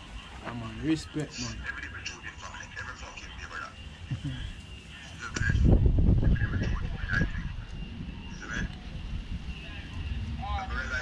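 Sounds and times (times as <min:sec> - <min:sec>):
wind rumble on microphone: 0:03.9 - 0:11.0.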